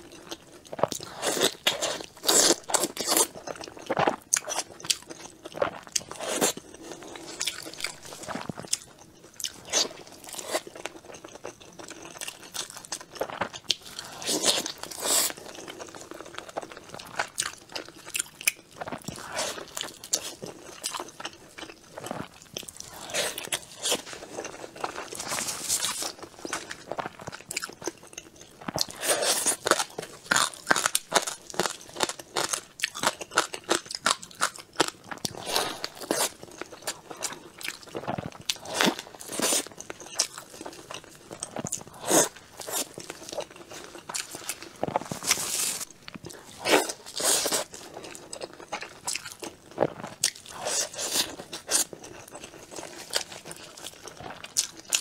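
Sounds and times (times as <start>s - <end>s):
biting and chewing: 0.0s - 55.0s.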